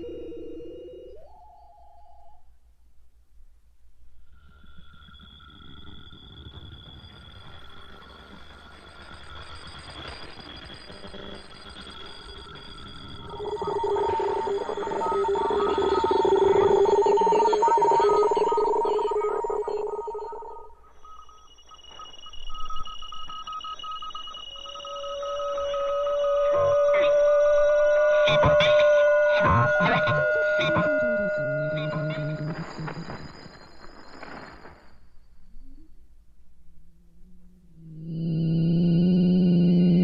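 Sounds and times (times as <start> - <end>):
whistling radio tones: 0.0 - 2.5, 4.9 - 36.1
low tones: 12.7 - 21.5.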